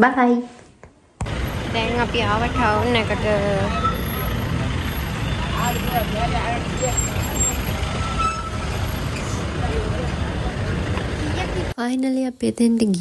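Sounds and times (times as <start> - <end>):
vehicles driving past: 1.2 - 11.8.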